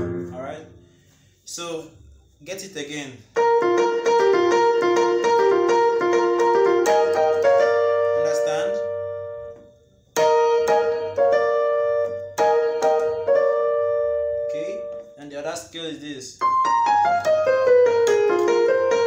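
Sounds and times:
electronic keyboard gospel piano: 0:00.0 - 0:00.8, 0:03.3 - 0:15.2, 0:16.4 - 0:19.0.

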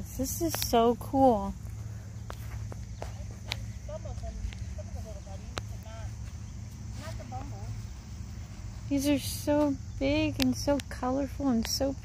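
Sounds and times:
light footsteps: 0:00.1 - 0:12.0.

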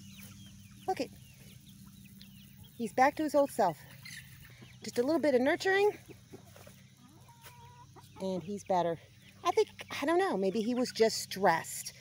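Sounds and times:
chicken sounds: 0:00.0 - 0:11.5.

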